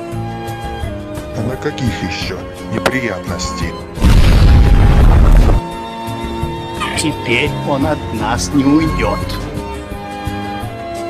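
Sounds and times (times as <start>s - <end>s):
explosion boom with deep rumble: 4.0s - 5.6s.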